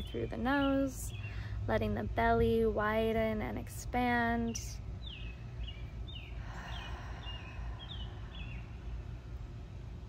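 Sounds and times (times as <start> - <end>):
low outdoor rumble: 0.0 - 10.0
small birds chirping: 0.0 - 10.0.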